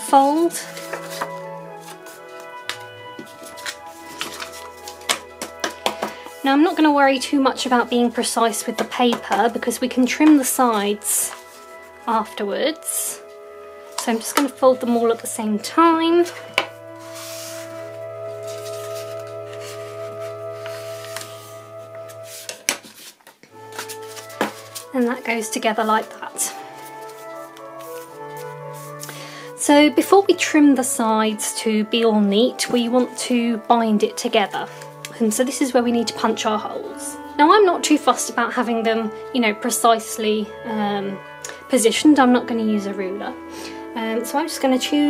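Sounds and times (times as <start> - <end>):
slow held music notes: 0.0 - 45.0
paper handled on wooden table: 0.1 - 6.8, 16.2 - 26.2.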